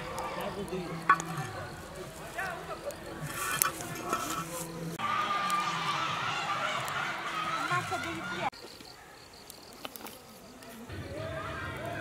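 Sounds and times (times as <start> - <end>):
insect chirping: 0.0 - 5.0, 7.0 - 11.2
wood fire crackles: 0.0 - 12.0.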